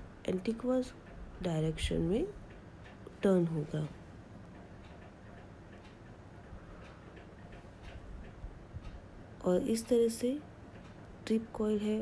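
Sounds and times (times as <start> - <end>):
low room noise: 0.0 - 12.0
faint light ticks: 4.5 - 9.0, 9.8 - 12.0.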